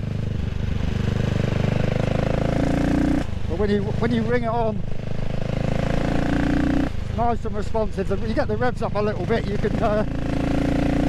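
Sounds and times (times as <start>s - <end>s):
motorcycle engine revving: 0.0s - 7.4s, 8.1s - 11.0s.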